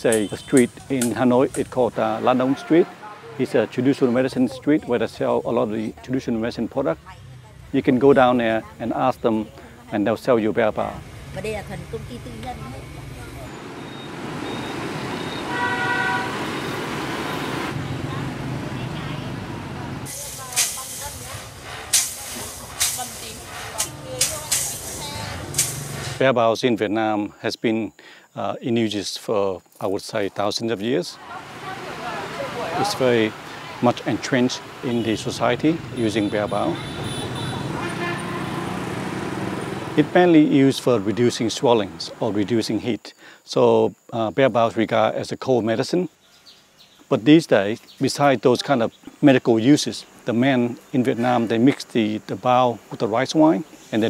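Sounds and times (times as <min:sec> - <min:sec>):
vehicle horn toot: 0:00.0 - 0:00.8, 0:02.0 - 0:03.8, 0:13.5 - 0:18.0, 0:34.8 - 0:39.8
motorbike and car engines passing: 0:00.0 - 0:09.8, 0:10.4 - 0:26.2, 0:31.2 - 0:42.5
street traffic: 0:00.0 - 0:26.3, 0:30.2 - 0:43.0, 0:45.9 - 0:54.0.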